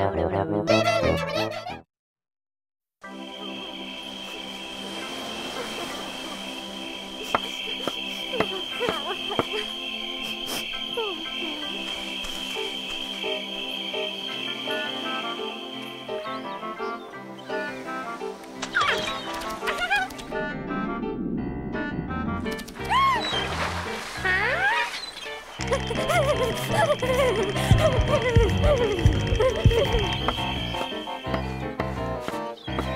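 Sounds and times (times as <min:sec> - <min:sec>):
cartoon background music: 0:00.0 - 0:01.9, 0:03.0 - 0:32.9
high cricket-like trill: 0:03.1 - 0:16.9, 0:25.0 - 0:31.8.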